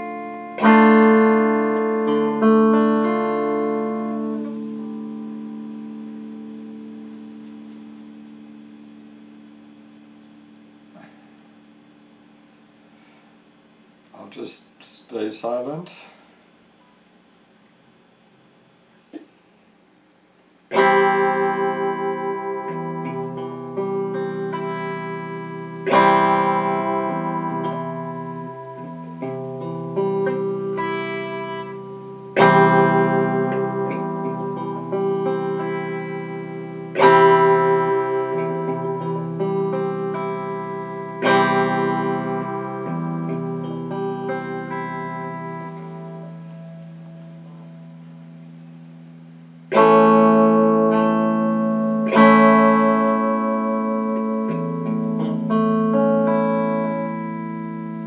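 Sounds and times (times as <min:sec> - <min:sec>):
electric guitar single notes: 0:00.0 - 0:13.2, 0:20.7 - 0:58.0
electric guitar chords ringing: 0:00.0 - 0:14.2, 0:20.7 - 0:58.0.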